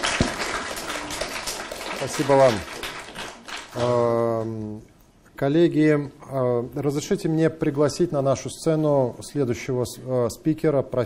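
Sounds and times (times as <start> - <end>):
audience applause: 0.0 - 4.0
man speaking: 2.0 - 2.7, 3.8 - 11.0.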